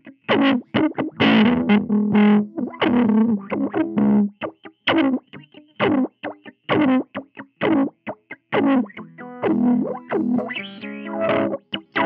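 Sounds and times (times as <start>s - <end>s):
funky electric guitar with envelope filter: 0.0s - 12.0s.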